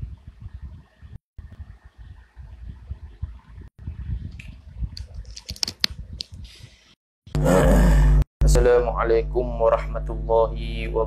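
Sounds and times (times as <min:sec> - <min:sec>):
man's throaty vocal sound: 0:07.4 - 0:08.3
low electrical hum: 0:07.4 - 0:11.0.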